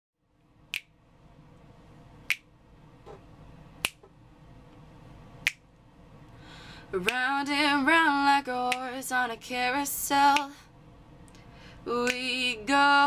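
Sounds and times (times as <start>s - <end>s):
finger snaps: 0.7s - 0.9s, 2.3s - 2.5s, 3.8s - 4.1s, 5.4s - 5.7s, 8.7s - 8.9s, 10.3s - 10.6s, 12.0s - 12.2s
person singing: 11.9s - 13.0s.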